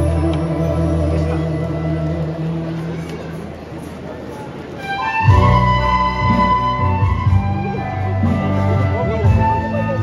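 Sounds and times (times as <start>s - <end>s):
crowd noise: 0.0s - 10.0s
live band music: 0.0s - 10.0s.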